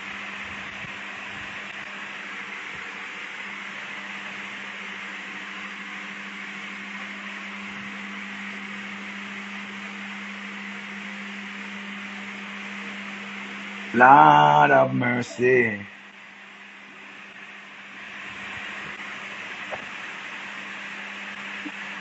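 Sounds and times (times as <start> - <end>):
constant hiss: 0.0 - 22.0.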